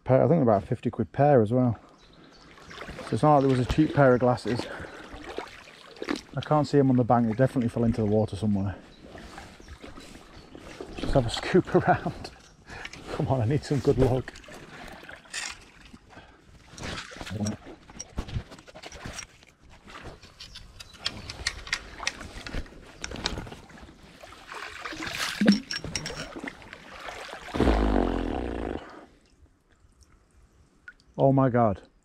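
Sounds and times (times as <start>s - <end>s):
low vocal groan: 27.6s - 29.1s.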